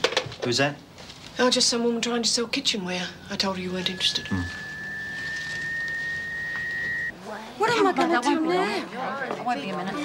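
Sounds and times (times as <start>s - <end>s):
steady high telephone tone: 3.6s - 7.1s.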